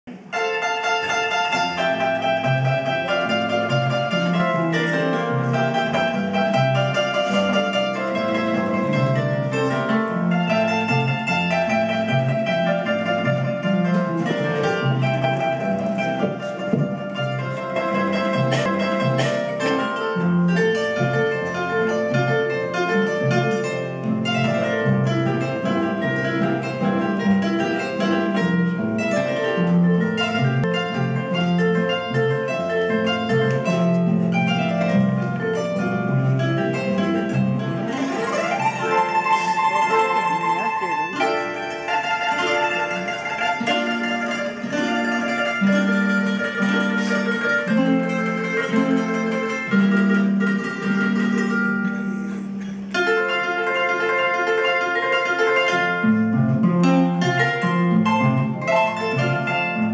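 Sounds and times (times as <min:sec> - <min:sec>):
harp bass line: 0:00.1 - 0:59.9
harp melody in upper strings: 0:00.1 - 0:59.9.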